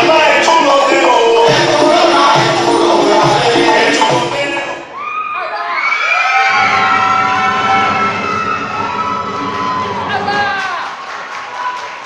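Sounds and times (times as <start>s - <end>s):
dance music: 0.0s - 5.0s, 6.4s - 11.0s
audience cheering and whooping: 4.8s - 12.0s
crowd din: 6.4s - 10.8s.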